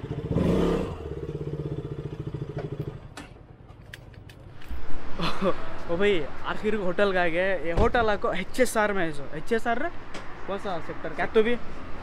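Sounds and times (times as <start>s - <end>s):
motorcycle engine idling: 0.0s - 3.2s
man talking: 5.8s - 11.7s.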